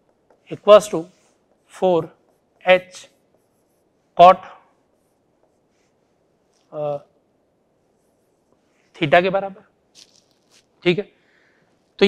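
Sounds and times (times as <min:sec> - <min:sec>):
marker writing on whiteboard: 0:00.0 - 0:06.8
man talking: 0:00.5 - 0:03.2, 0:04.2 - 0:04.6, 0:06.7 - 0:07.1, 0:09.0 - 0:09.6, 0:10.8 - 0:11.1.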